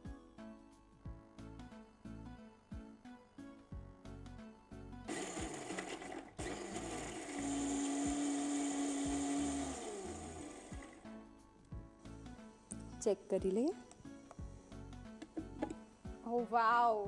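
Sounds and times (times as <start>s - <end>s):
mixer grinder running: 5.1s - 11.0s.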